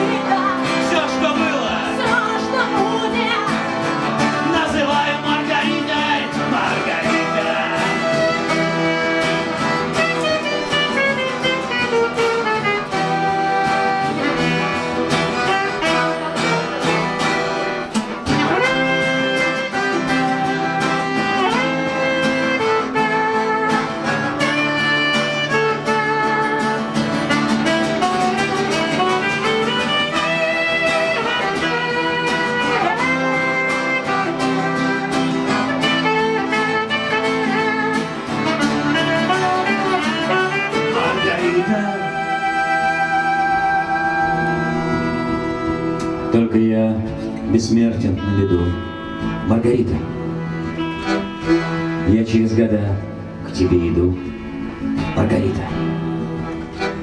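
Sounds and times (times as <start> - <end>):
acoustic guitars strumming: 0.0 - 57.0
sliding lead melody: 0.0 - 57.0.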